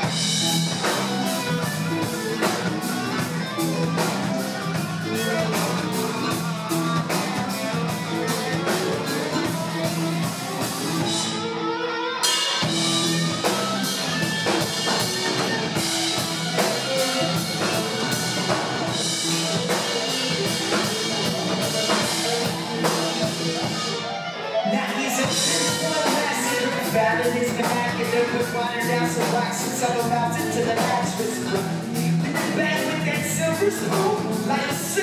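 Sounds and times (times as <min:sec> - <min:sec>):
rock band playing: 0:00.0 - 0:35.0.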